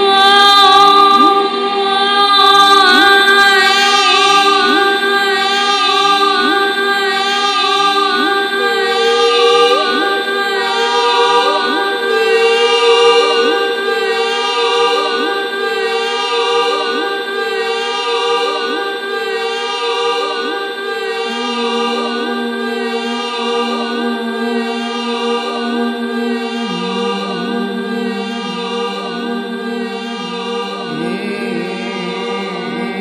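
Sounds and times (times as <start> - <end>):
layered choir-like vocal drone: 0.0 - 33.0
rising vocal glides: 7.9 - 33.0.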